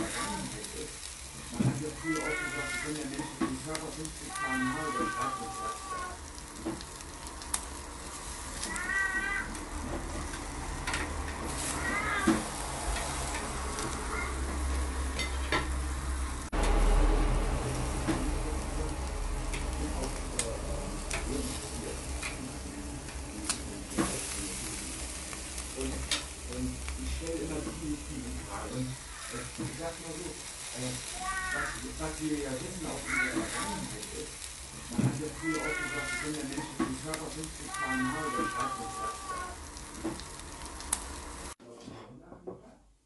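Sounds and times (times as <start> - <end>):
meat sizzling on a grill: 0.0 - 41.6
cat meowing: 2.0 - 3.0, 4.3 - 6.2, 8.6 - 9.6, 11.6 - 12.4, 31.2 - 31.8, 35.4 - 36.4, 37.7 - 39.6
metal tongs clicking on grill: 22.2 - 22.4, 23.1 - 24.4.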